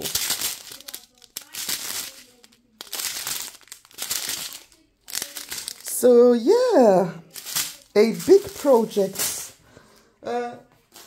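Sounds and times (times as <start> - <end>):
plastic packets crinkling: 0.0 - 9.6.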